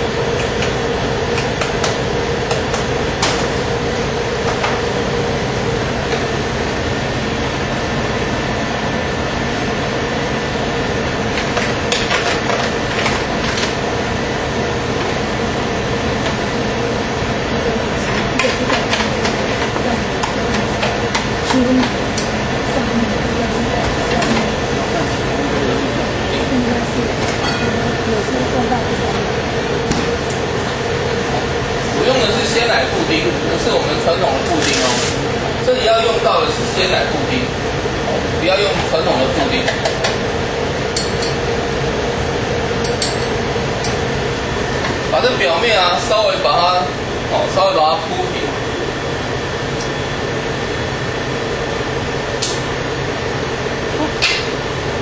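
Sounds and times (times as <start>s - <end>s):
steady mechanical hum: 0.0s - 55.0s.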